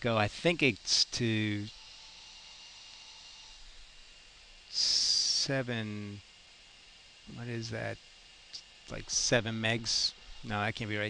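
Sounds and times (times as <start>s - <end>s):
faint background hiss: 2.9s - 6.2s, 7.2s - 11.0s.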